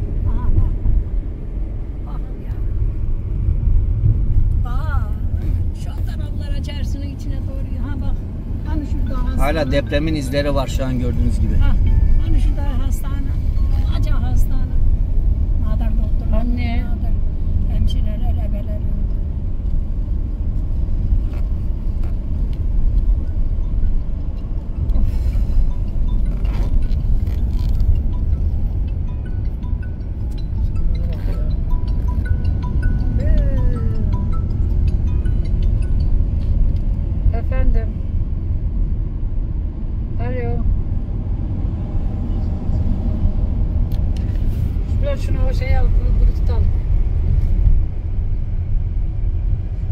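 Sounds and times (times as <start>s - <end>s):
diesel engine running: 0.0s - 49.9s
road and tyre noise: 0.0s - 49.9s.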